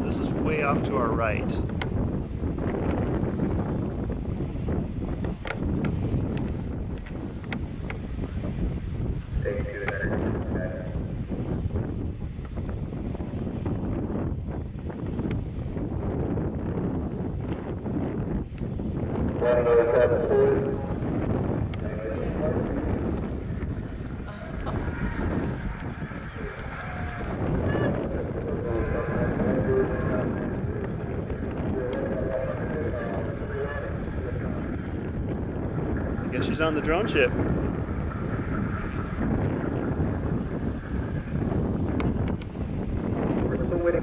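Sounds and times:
people's voices: 0:00.0 - 0:01.6, 0:09.4 - 0:11.0, 0:19.4 - 0:37.4, 0:42.4 - 0:44.0
wind buffeting microphone: 0:00.0 - 0:44.0.

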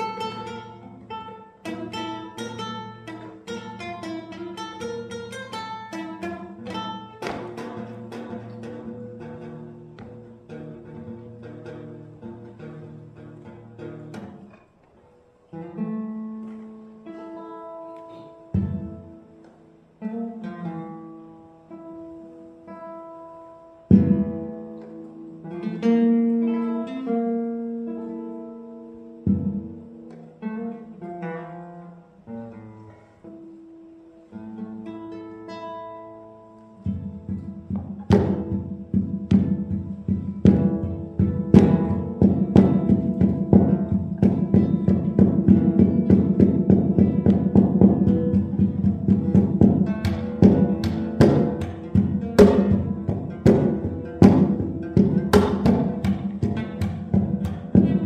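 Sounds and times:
solo classical guitar: 0:00.0 - 0:58.0.

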